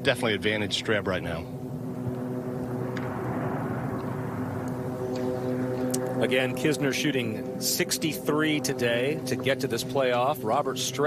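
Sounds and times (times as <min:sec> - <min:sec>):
engine drone: 0:00.0 - 0:11.0.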